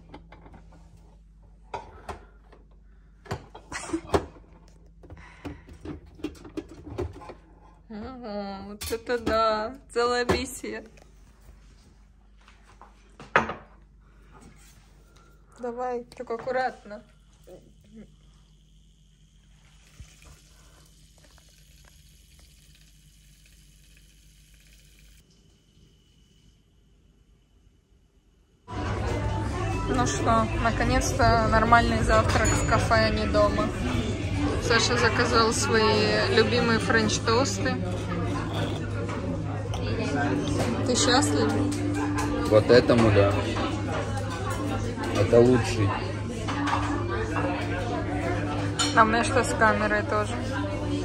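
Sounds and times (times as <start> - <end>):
coffee machine pump hum: 16.2 - 27.6
milk frother hissing: 17.1 - 26.7.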